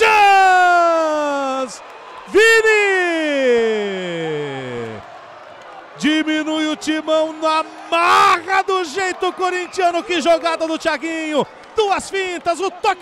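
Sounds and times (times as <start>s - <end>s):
commentator's drawn-out goal cry: 0.0s - 5.0s, 6.0s - 13.0s
man commentating: 0.0s - 5.1s, 5.9s - 13.0s.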